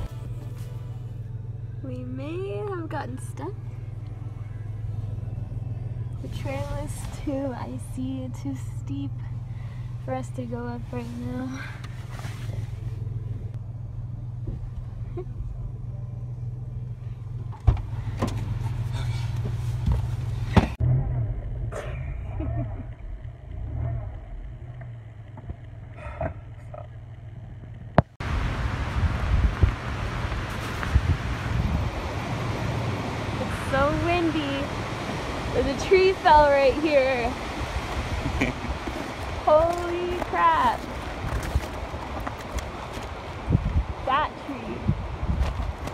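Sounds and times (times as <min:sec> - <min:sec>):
car engine droning in cabin: 0:00.0 - 0:45.9
wind rushing on microphone: 0:28.2 - 0:39.6, 0:40.2 - 0:45.9.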